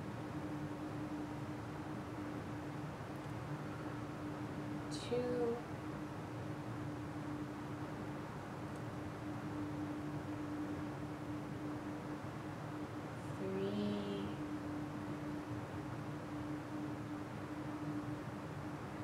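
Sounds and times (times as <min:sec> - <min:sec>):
constant low hum: 0:00.0 - 0:19.0.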